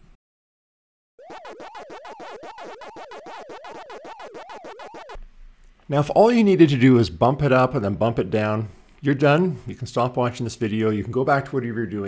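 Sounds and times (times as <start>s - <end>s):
electronic game beeps: 1.2s - 5.2s.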